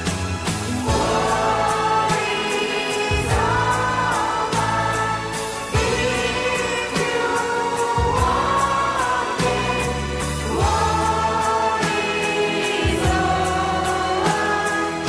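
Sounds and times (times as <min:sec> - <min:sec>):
band with bass and beat: 0:00.0 - 0:15.0
group singing christmas song: 0:00.5 - 0:15.0.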